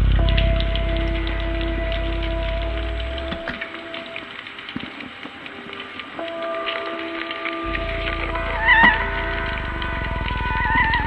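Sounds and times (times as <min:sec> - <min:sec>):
low fast-pulsing drone: 0:00.0 - 0:04.0, 0:07.6 - 0:11.0
wavering lead tone with vibrato: 0:00.0 - 0:05.0, 0:06.2 - 0:11.0
synthesizer held tones: 0:07.6 - 0:11.0.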